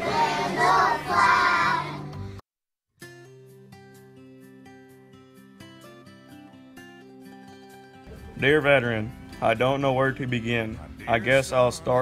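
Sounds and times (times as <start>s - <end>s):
young children singing in unison: 0.0s - 2.1s.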